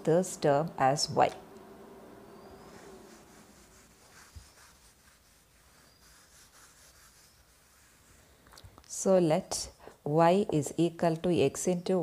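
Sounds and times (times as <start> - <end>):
duster rubbing whiteboard: 2.5 - 8.2.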